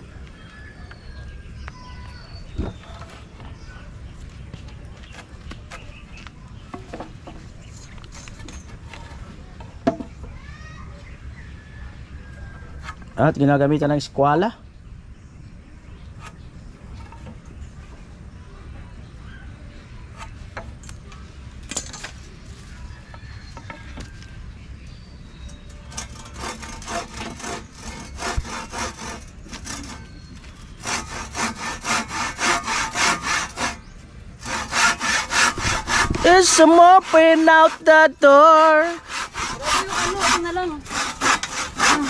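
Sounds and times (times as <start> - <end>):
handsaw cutting wood: 25.9 - 42.0.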